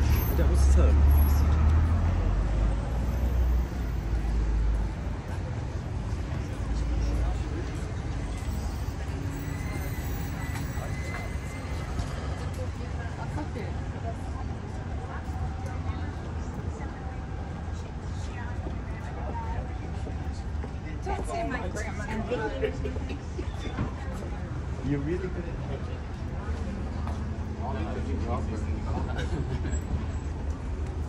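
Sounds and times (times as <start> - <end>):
low rumble of passing traffic: 0.0 - 31.0.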